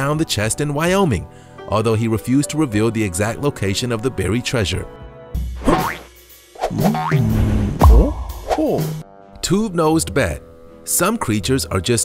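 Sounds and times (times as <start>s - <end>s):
music: 0.0s - 12.0s
springy boing glides: 6.7s - 7.4s.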